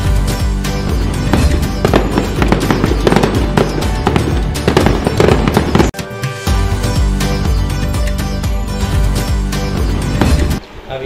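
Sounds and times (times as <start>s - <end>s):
music: 0.0s - 10.7s
fireworks crackling and popping: 1.2s - 6.0s.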